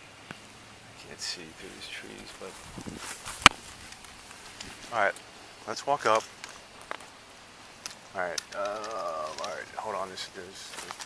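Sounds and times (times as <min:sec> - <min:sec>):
gear clicking and rustling: 0:07.8 - 0:11.0.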